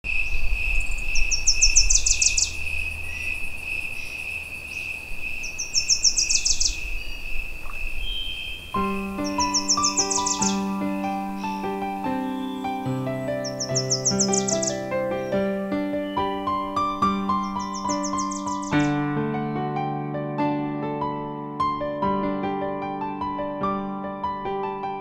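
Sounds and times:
insect drone: 0.1 - 14.8
bird singing: 0.1 - 19.0
piano music: 8.6 - 25.0.

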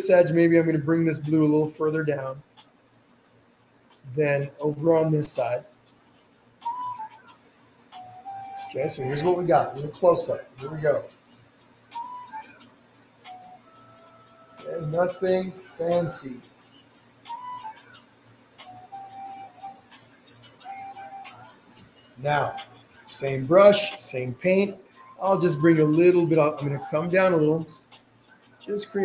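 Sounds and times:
whistle-like tone: 6.6 - 7.3, 11.9 - 14.7, 17.3 - 18.0, 18.6 - 19.8.

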